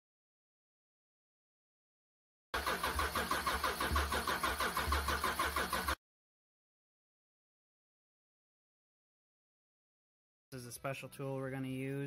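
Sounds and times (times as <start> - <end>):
engine cranked by starter: 2.6 - 6.0.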